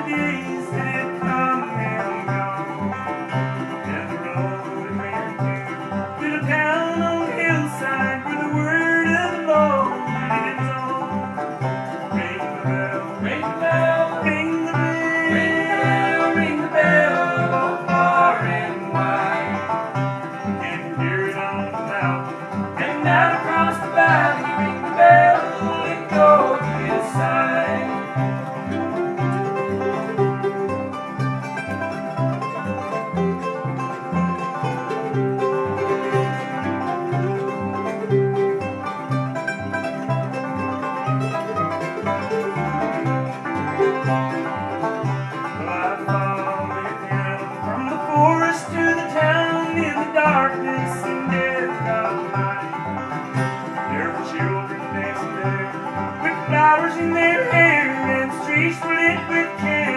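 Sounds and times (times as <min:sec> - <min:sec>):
acoustic guitar: 0:00.0 - 0:59.9
banjo: 0:00.0 - 0:59.9
fiddle: 0:00.0 - 0:59.9
upright bass: 0:00.0 - 0:59.9.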